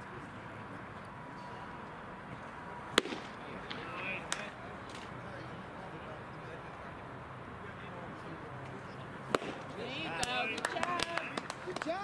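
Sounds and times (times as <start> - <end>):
ballpark crowd background: 0.0 - 12.0
sharp loud crack: 3.0 - 3.4, 9.3 - 9.7.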